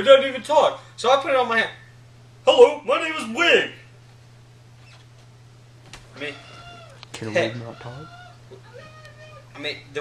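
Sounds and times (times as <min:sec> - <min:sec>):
steady low hum: 0:00.0 - 0:10.0
faint high squeaks: 0:04.8 - 0:05.1.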